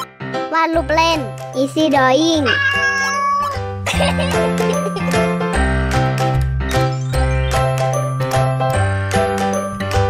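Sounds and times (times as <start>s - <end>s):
bright tinkling music: 6.6s - 10.0s.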